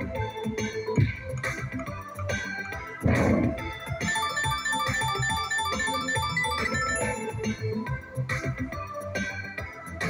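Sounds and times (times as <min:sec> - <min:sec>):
slot machine bonus burst: 0:04.0 - 0:07.8.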